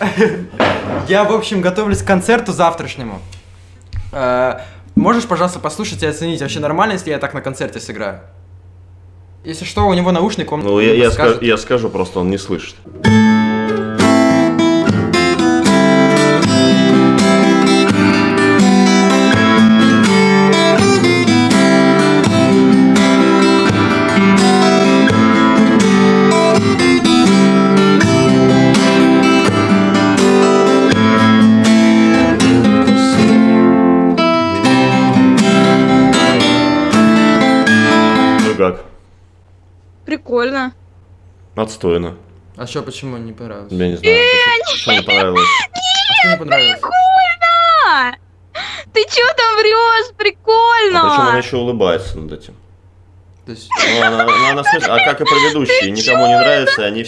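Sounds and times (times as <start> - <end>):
acoustic guitar plucked solo: 12.9 - 38.7, 44.1 - 47.8, 53.8 - 56.9.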